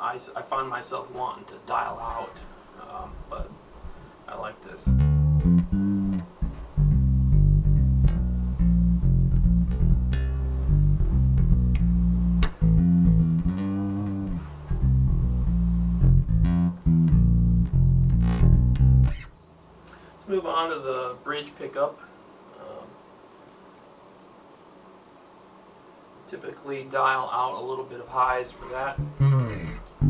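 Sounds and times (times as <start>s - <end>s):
electric bass plucked fingerstyle: 4.9s - 19.4s, 28.8s - 30.0s.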